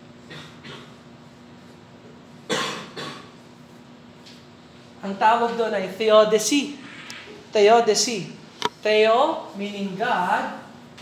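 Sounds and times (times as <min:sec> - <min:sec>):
man coughing: 0:02.5 - 0:03.4.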